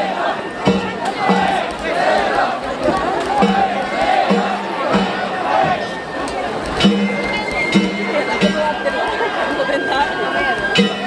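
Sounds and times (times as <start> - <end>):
crowd chatter: 0.0 - 11.0
percussion strike: 0.0 - 11.0
bamboo flute holding notes: 3.4 - 11.0.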